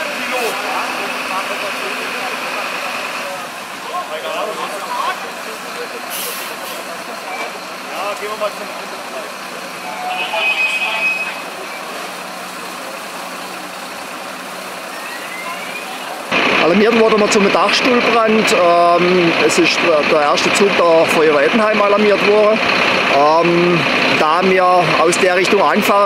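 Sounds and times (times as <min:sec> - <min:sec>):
distant voices: 0:00.0 - 0:26.0
fire truck engine running: 0:00.0 - 0:26.0
brief high tone: 0:14.9 - 0:16.2.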